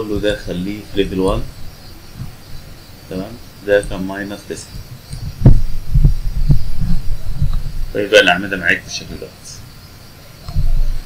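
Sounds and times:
dull low thumps: 0.0 - 8.1, 10.5 - 11.0.

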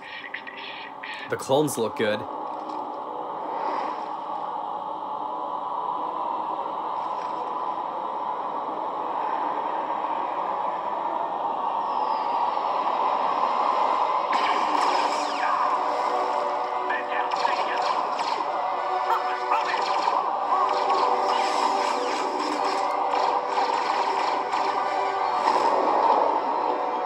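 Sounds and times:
dense film soundtrack: 0.0 - 27.0.

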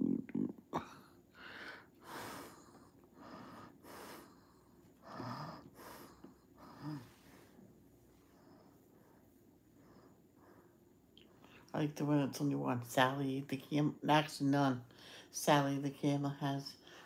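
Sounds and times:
woman breathing close to microphone: 1.3 - 11.7, 14.9 - 15.3.

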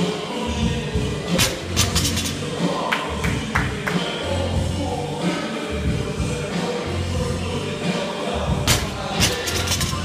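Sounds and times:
music with steady bass line: 0.0 - 10.0.

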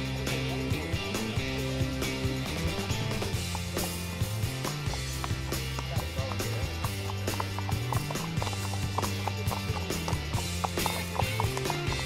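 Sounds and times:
background music with held tones: 0.0 - 12.0
horse hooves clip-clopping on asphalt: 0.0 - 12.0.

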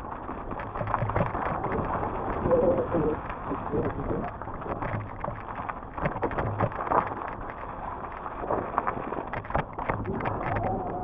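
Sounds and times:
bike clattering and rattling: 0.0 - 11.0
bike tyres on loose gravel: 0.0 - 11.0.

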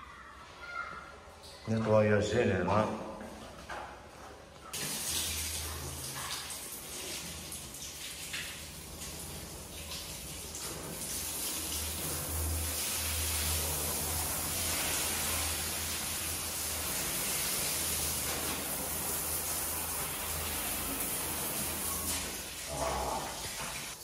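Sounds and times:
hose water spraying on door: 4.7 - 24.0.

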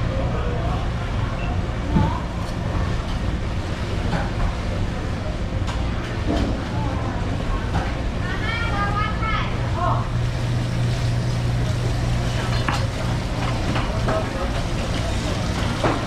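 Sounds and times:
low machinery hum: 0.0 - 16.0.

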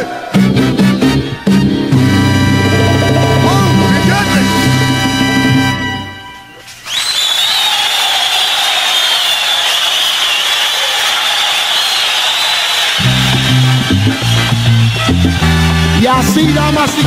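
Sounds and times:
salsa band with bass: 0.4 - 6.3, 13.0 - 17.0
noisy high wash with wavering tone: 2.1 - 6.2.

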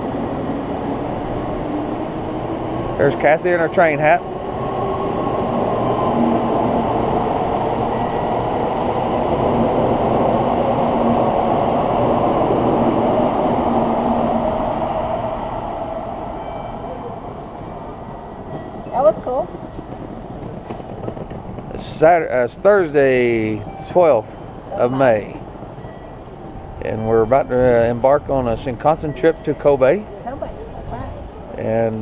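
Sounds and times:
high-speed train rushing past: 0.0 - 32.0.

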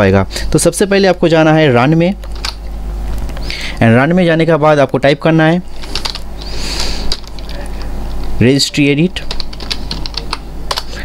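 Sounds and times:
keyboard typing clicks: 2.2 - 3.4, 5.8 - 6.2, 7.1 - 7.8, 9.2 - 11.0.

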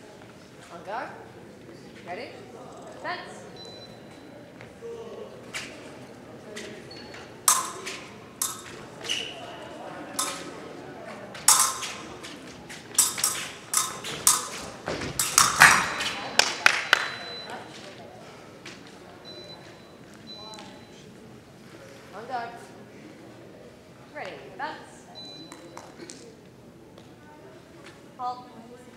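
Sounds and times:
fencing blades clashing: 6.6 - 17.3
footwork thuds: 11.4 - 16.4.

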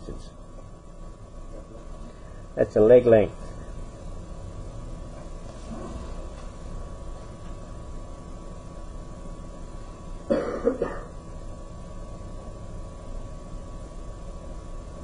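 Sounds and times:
faint constant whine: 0.0 - 15.0
low room hum: 0.0 - 15.0
person coughing: 10.3 - 11.2.

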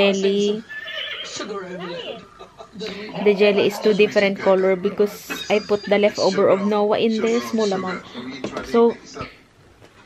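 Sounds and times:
woman speaking: 0.0 - 0.6, 2.8 - 8.0.

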